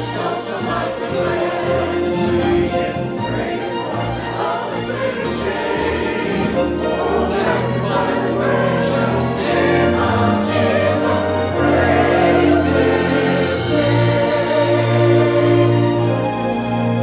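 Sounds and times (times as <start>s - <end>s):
accompanying music: 0.0s - 17.0s
choir singing: 0.0s - 17.0s.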